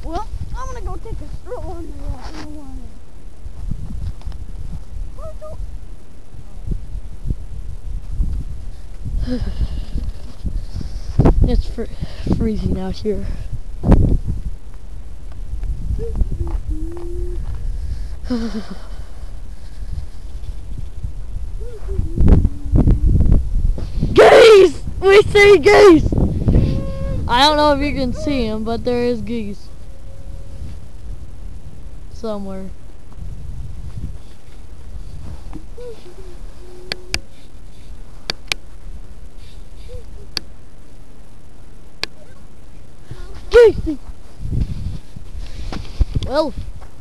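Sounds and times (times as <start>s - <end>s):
wind buffeting microphone: 0.0s - 38.2s, 43.0s - 47.0s.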